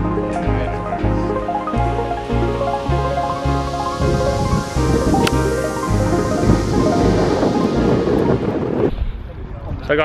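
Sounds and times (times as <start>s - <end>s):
background music with steady beat: 0.0s - 8.3s.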